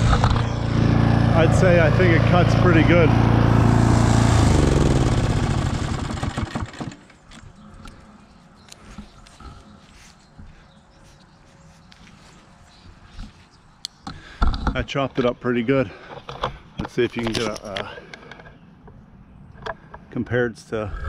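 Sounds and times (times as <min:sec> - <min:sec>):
lawn mower engine spinning down: 0:00.0 - 0:07.3.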